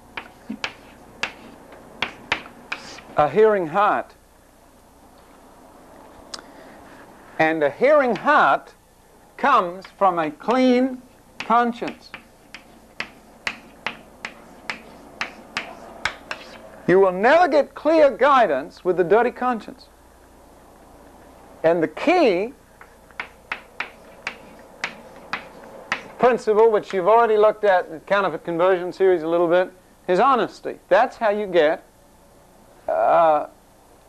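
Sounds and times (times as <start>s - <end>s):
chalk tapping on blackboard: 0.2s - 3.2s, 11.4s - 16.7s, 22.8s - 26.2s.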